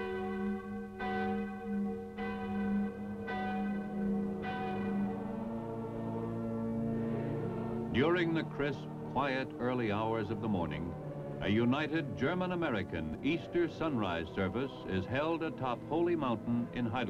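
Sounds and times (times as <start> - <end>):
church bells ringing: 0.0 - 17.0.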